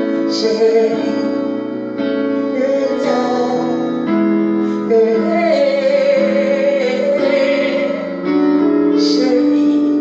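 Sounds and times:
sustained instrumental chords: 0.0 - 10.0
woman singing into a microphone: 4.9 - 8.3.

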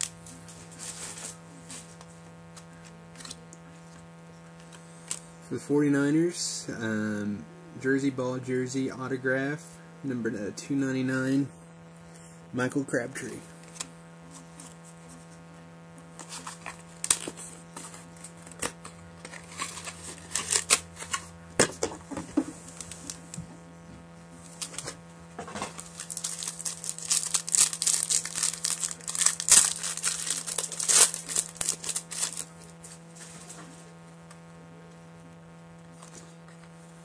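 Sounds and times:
wrappers crinkling and rustling: 25.6 - 33.4.

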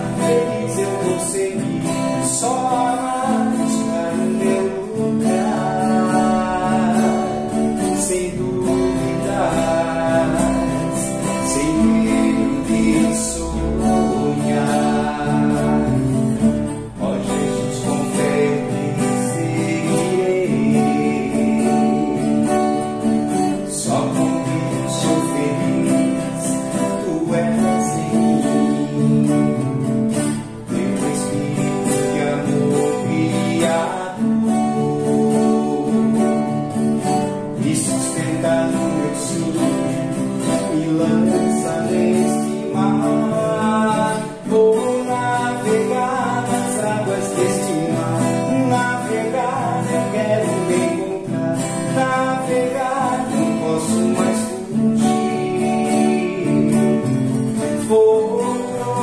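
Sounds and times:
acoustic guitars strummed: 0.0 - 59.0
man singing: 0.0 - 59.0.

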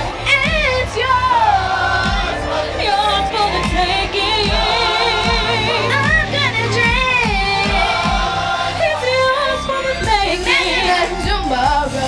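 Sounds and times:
music with pulsing beat: 0.0 - 12.0
woman singing with vibrato: 0.0 - 12.0.

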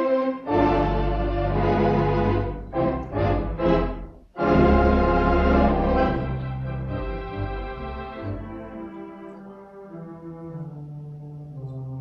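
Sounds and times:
pipe organ playing slow chords: 0.0 - 12.0.

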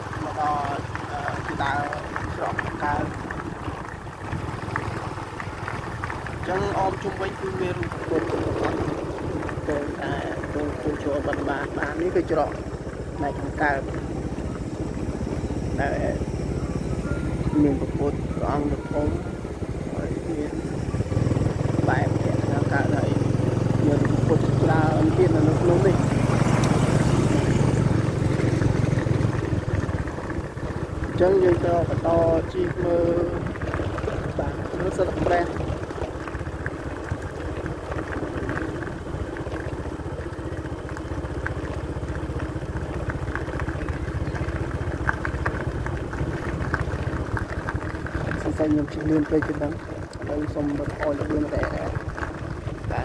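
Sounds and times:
people's voices: 0.0 - 3.2, 6.4 - 9.0, 9.6 - 14.8, 15.6 - 26.2, 31.1 - 33.5, 34.2 - 35.6, 48.2 - 52.0
small motorcycle engine running: 0.0 - 53.0
wind rumbling on microphone: 0.0 - 53.0.

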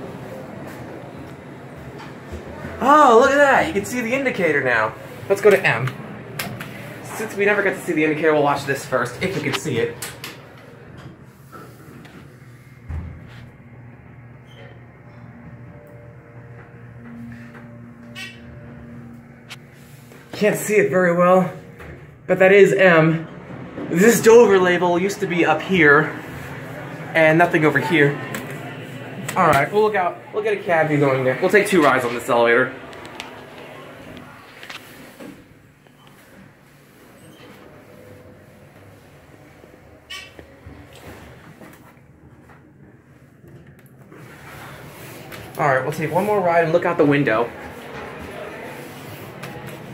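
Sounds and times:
elevator low hum: 0.0 - 49.9
short squeak: 18.1 - 18.5.

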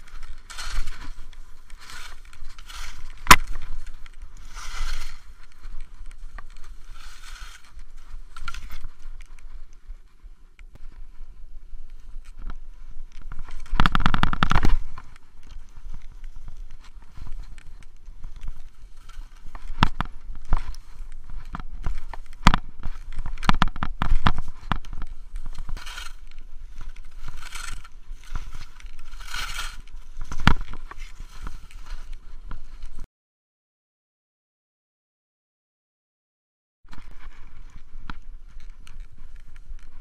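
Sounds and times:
skis scraping on snow: 0.0 - 13.8, 14.6 - 33.0
skis swishing through snow: 0.0 - 13.8, 14.7 - 23.4, 24.0 - 33.0
sharp clicks and knocks: 12.3 - 15.3, 16.8 - 31.6.

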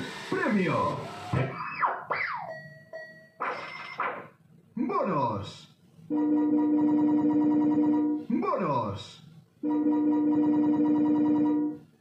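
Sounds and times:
slot machine electronic tones: 6.1 - 8.3, 9.6 - 11.9.

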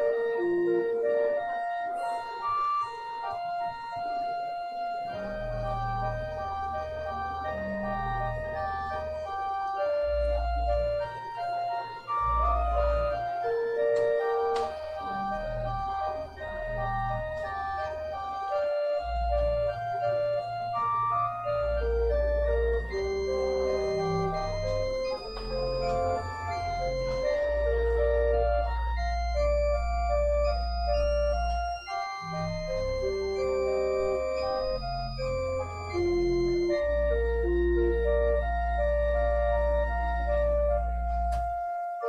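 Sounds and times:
deep organ bass pedal notes: 0.0 - 41.8
church organ melody: 0.0 - 42.0.

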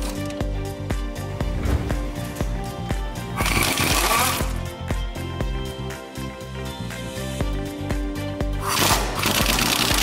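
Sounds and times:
music with steady beat: 0.0 - 10.0.

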